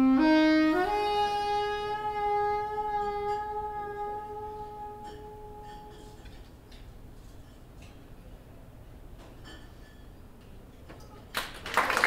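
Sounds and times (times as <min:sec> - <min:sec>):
soprano saxophone long note: 0:00.0 - 0:05.9.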